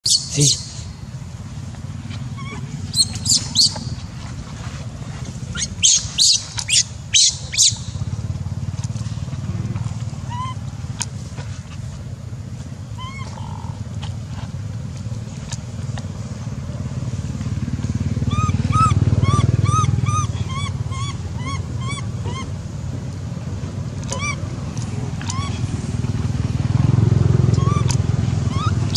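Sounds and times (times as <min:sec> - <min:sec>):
monkey screams: 0:00.0 - 0:00.8, 0:02.3 - 0:03.8, 0:05.5 - 0:07.9, 0:10.2 - 0:10.7, 0:13.0 - 0:13.7, 0:18.2 - 0:22.6, 0:24.0 - 0:24.5, 0:25.2 - 0:25.7, 0:27.6 - 0:28.9
high monkey coos: 0:00.0 - 0:00.9, 0:02.1 - 0:04.0, 0:05.3 - 0:08.1, 0:10.1 - 0:10.9, 0:12.9 - 0:14.0, 0:18.2 - 0:22.9, 0:24.0 - 0:26.0, 0:27.2 - 0:28.9
short monkey calls: 0:00.0 - 0:00.9, 0:02.3 - 0:04.0, 0:05.5 - 0:08.0, 0:10.2 - 0:10.8, 0:12.9 - 0:13.8, 0:18.2 - 0:22.7, 0:24.0 - 0:24.5, 0:25.1 - 0:25.7, 0:27.5 - 0:28.9.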